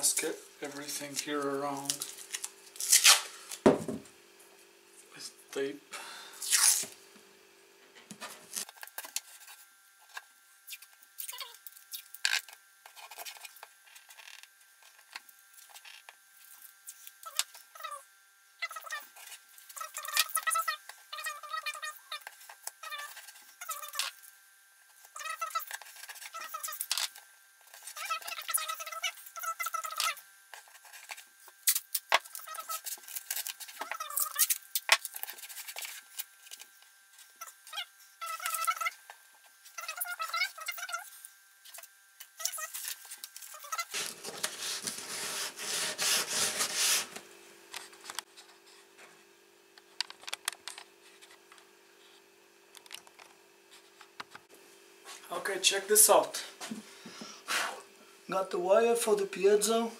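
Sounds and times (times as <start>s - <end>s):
masking tape ripping: 1.8s - 3.4s, 6.4s - 7.0s, 43.6s - 47.2s
sandpaper scraping wood: 43.8s - 47.2s.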